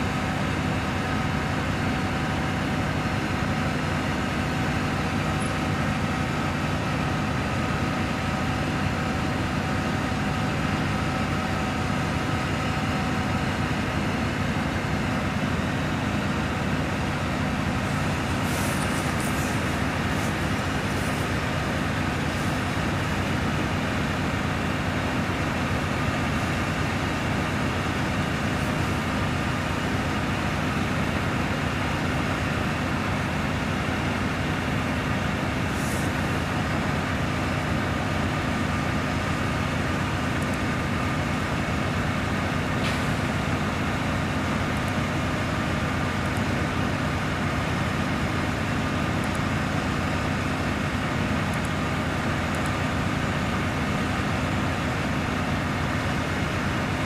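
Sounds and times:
diesel engine droning: 0.0 - 57.0.

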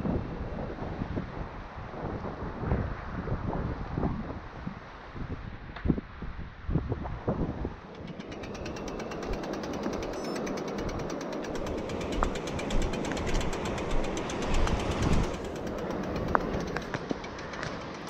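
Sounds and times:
wind and tyre rumble: 0.0 - 18.0
bicycle freewheel ticking: 7.9 - 18.0.

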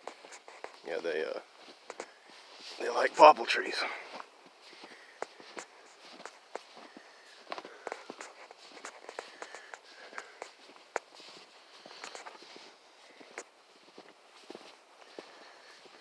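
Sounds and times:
footsteps crunching through snow: 0.0 - 16.0.

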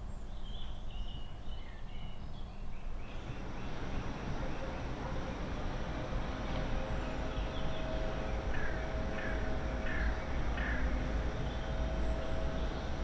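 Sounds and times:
outdoor background noise: 0.0 - 13.0
bird calling: 3.1 - 13.0.

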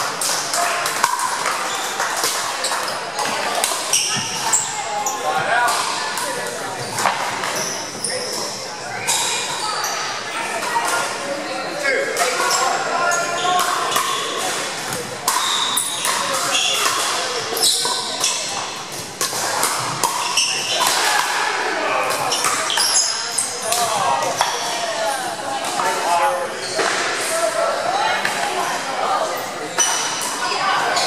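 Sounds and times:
chatter of voices: 0.0 - 31.0.

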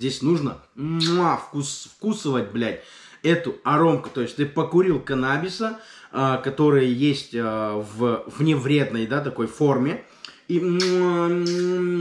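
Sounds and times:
man holding long ee vowel: 10.5 - 12.0.

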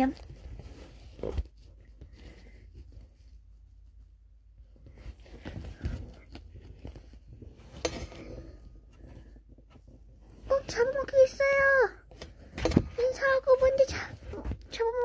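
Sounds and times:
faint rustling: 0.0 - 15.0.

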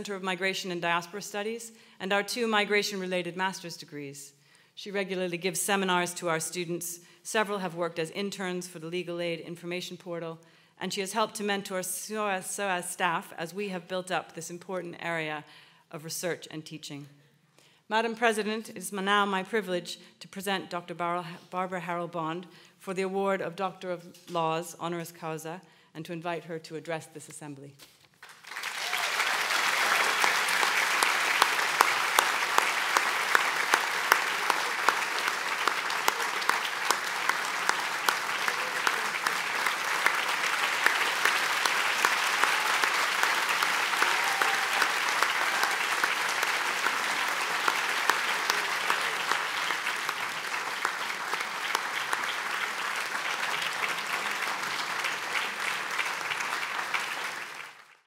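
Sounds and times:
audience applauding: 28.2 - 58.0.

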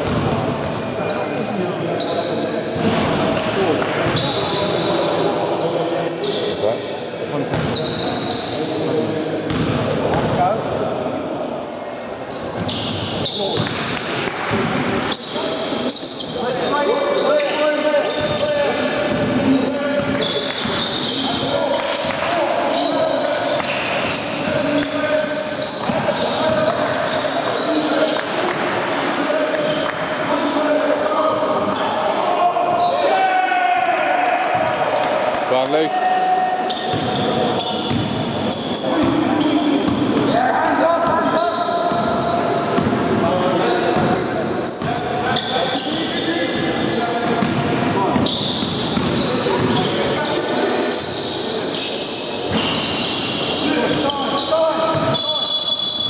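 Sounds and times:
basketball bouncing in hall: 0.0 - 1.1, 2.0 - 4.8, 7.3 - 8.4, 9.5 - 10.6, 12.2 - 16.7, 17.4 - 30.7, 36.6 - 40.4, 41.0 - 50.2, 51.0 - 56.0
players calling out: 12.2 - 56.0.

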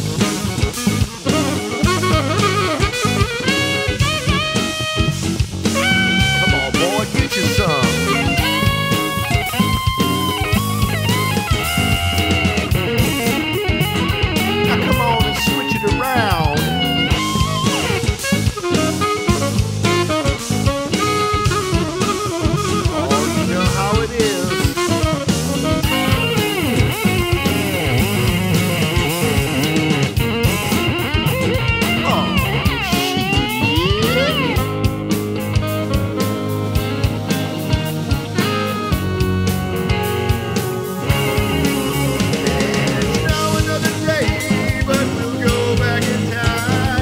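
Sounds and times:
bass guitar: 0.0 - 47.0
drum kit: 0.0 - 47.0
electric guitar lead: 0.0 - 47.0.

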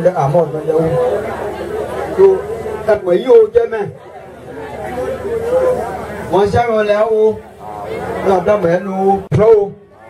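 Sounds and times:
crowd chatter: 0.0 - 10.0
man speaking: 5.4 - 9.8.

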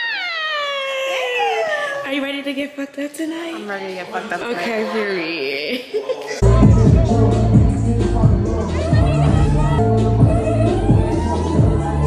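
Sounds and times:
woman squealing: 0.0 - 2.2.

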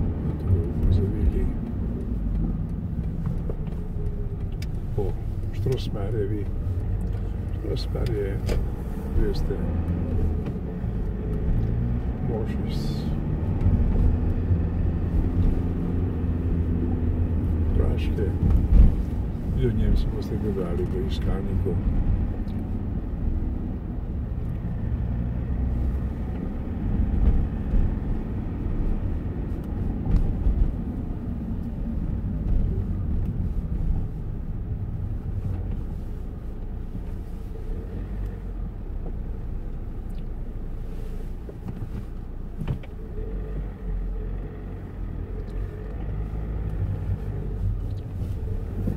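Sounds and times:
car engine and tyre rumble: 0.0 - 48.9
car bumps: 18.3 - 19.4, 41.4 - 43.1.

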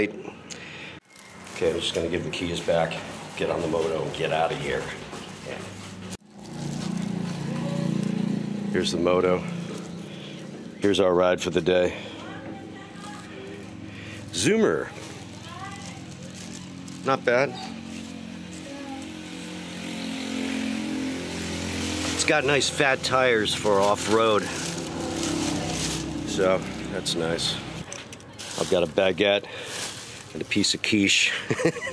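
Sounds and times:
motorcycle engine running: 5.9 - 27.9
small engine idling: 6.4 - 11.0.

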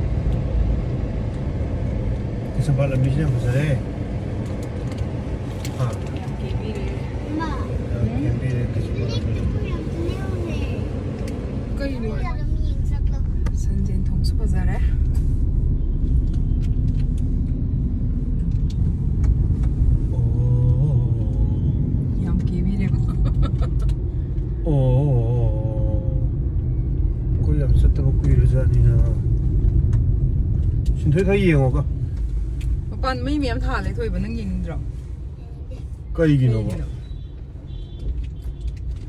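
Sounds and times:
engine and road noise rumble: 0.0 - 39.0
voices talking: 5.8 - 14.8.

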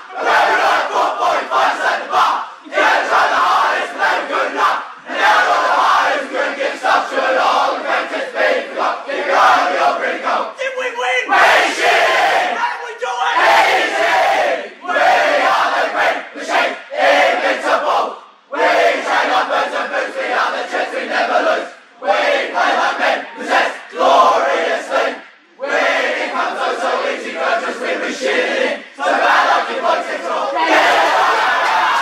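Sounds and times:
group of young men chanting: 0.1 - 10.6, 11.2 - 32.0.

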